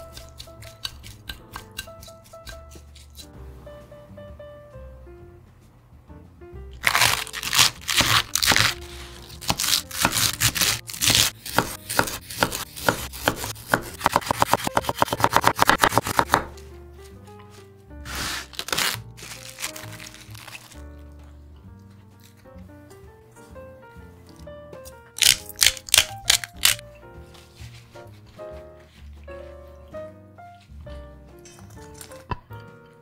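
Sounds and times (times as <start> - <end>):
knife chopping on wooden board: 0.0 - 3.3, 9.4 - 16.6
soft background music: 0.0 - 33.0.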